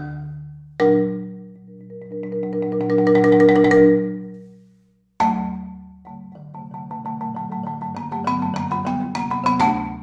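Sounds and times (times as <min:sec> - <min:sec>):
marimba played with mallets: 0:00.0 - 0:04.5, 0:05.2 - 0:10.0.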